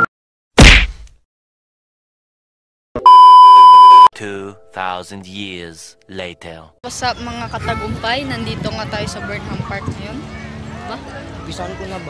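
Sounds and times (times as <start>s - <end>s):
high-pitched test tone beep: 3.0s - 4.1s.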